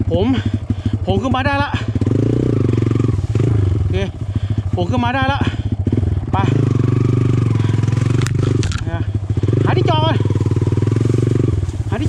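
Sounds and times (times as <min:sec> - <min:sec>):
dirt bike engine at low revs: 0:00.0 - 0:12.0.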